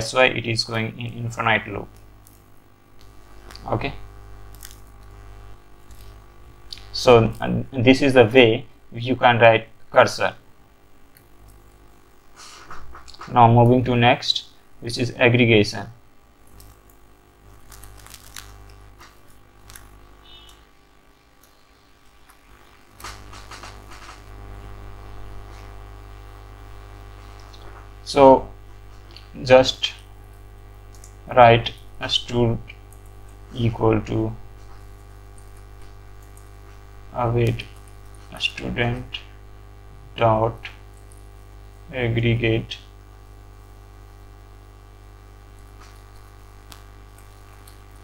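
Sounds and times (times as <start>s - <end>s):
low steady background hum: 0.0s - 48.0s.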